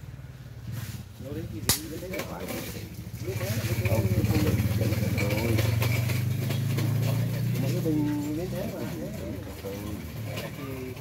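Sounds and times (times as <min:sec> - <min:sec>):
voices talking: 0:01.3 - 0:11.0
engine running: 0:02.3 - 0:11.0.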